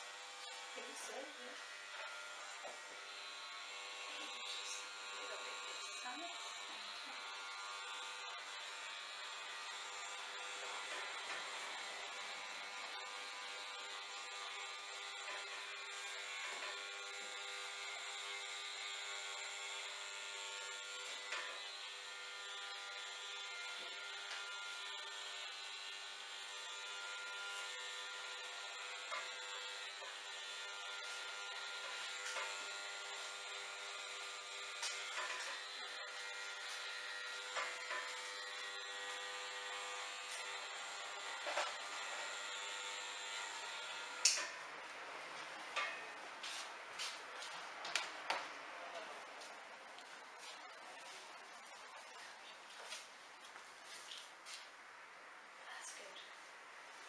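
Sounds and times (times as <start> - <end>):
electric hair trimmer buzzing: 0.0 - 53.1.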